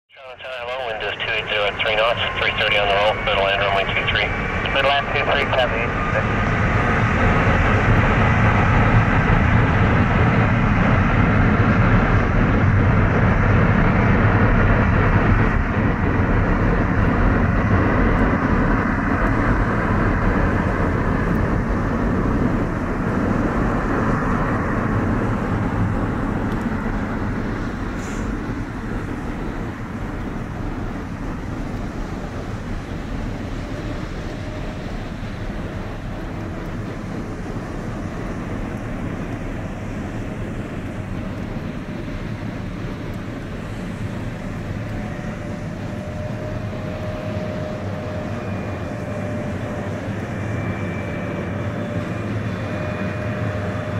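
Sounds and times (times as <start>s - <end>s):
jet engines rumbling: 0.1s - 53.9s.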